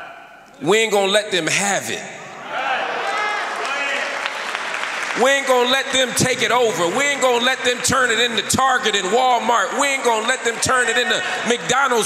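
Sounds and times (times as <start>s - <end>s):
congregation applauding: 2.8s - 12.0s.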